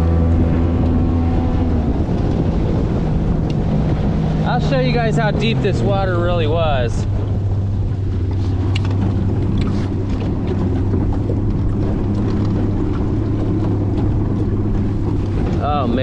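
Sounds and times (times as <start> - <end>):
outboard motor humming: 0.0 - 16.0.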